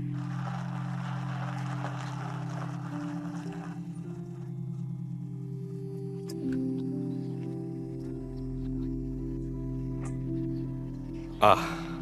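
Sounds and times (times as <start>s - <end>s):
low drone music: 0.0s - 12.0s.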